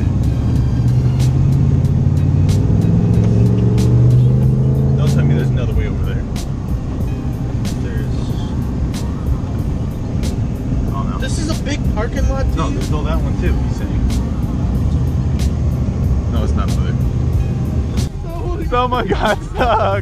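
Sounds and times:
truck engine revving: 0.0s - 20.0s.

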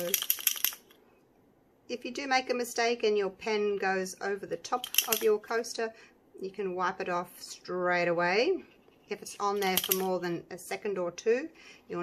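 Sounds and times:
mixing ball rattling in marker: 0.0s - 1.0s, 4.7s - 5.4s, 8.8s - 10.2s.

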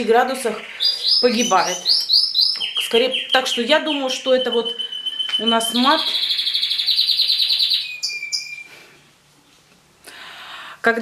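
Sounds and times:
canary singing: 0.0s - 9.2s.

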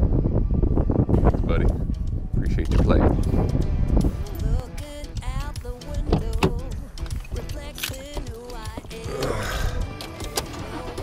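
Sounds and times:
heavy wind rumble on microphone: 0.0s - 7.7s.

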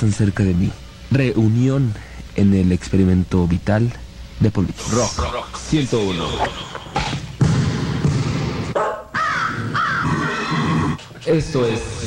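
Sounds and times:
harsh animal-like calls: 9.1s - 11.1s.

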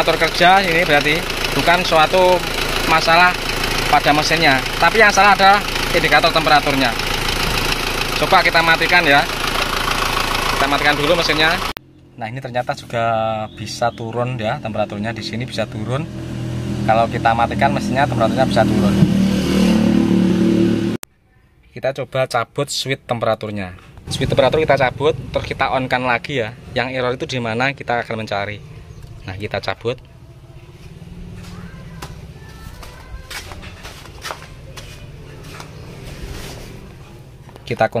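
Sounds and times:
car engine idling: 0.0s - 21.0s, 23.8s - 38.0s.

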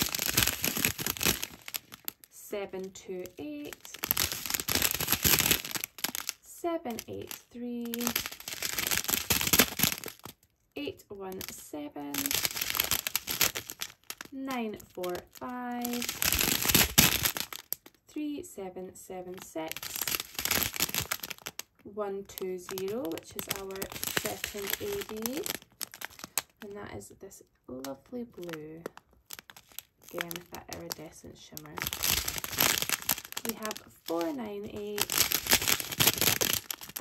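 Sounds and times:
plastic bags crinkling: 0.0s - 10.5s, 11.4s - 18.0s, 19.2s - 26.8s, 27.8s - 37.0s
person speaking: 2.3s - 4.1s, 6.4s - 8.2s, 10.8s - 12.4s, 14.3s - 16.2s, 18.1s - 20.2s, 21.8s - 25.6s, 26.6s - 29.0s, 30.1s - 32.1s, 33.4s - 35.5s.

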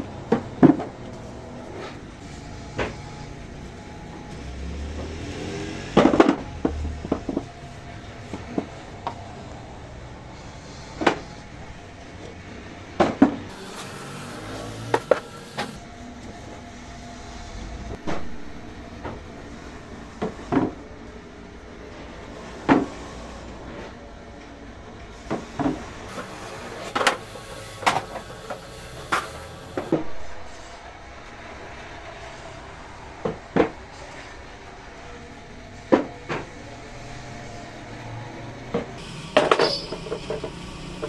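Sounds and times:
workshop hum and hiss: 0.0s - 41.0s.

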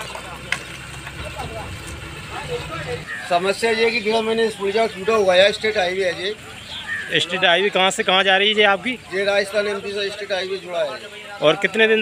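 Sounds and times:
faint voices: 0.0s - 12.0s
vehicle engine rumbling: 0.0s - 12.0s.

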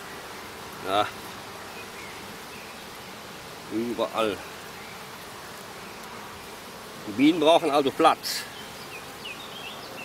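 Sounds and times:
honeybees buzzing: 0.0s - 10.0s.

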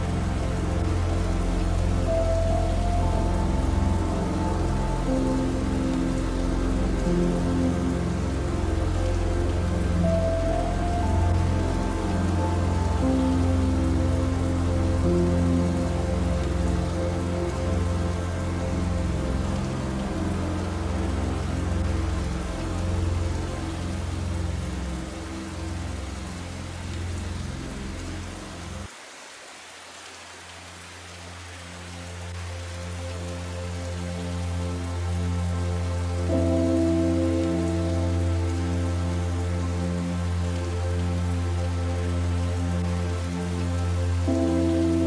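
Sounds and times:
rain falling: 0.0s - 45.0s
soft slow music: 0.0s - 45.0s.

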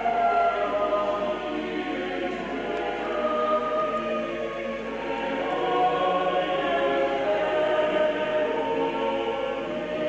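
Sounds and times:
choir singing slow sacred music: 0.0s - 10.0s.

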